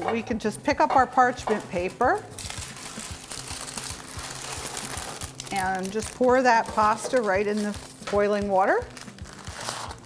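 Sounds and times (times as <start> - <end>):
parchment paper crinkling: 2.4 - 8.2, 8.8 - 10.0.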